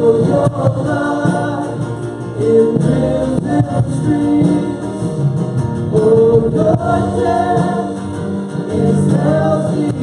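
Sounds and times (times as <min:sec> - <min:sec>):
man and woman singing: 0:00.0 - 0:05.2, 0:05.9 - 0:10.0
acoustic guitar: 0:00.0 - 0:10.0
drums: 0:00.0 - 0:10.0
electric bass: 0:00.0 - 0:10.0
keyboard: 0:00.0 - 0:10.0.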